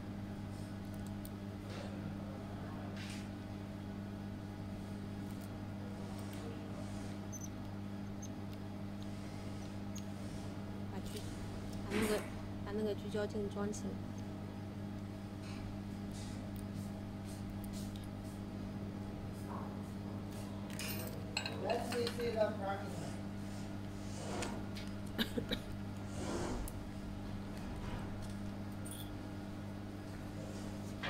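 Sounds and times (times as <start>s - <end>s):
low electrical hum: 0.0s - 31.0s
allen key squeaking in screws: 7.3s - 8.4s.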